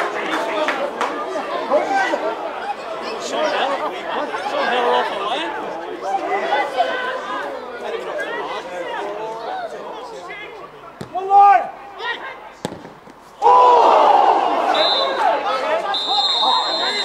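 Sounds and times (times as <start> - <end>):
chatter of many voices: 0.0 - 17.0.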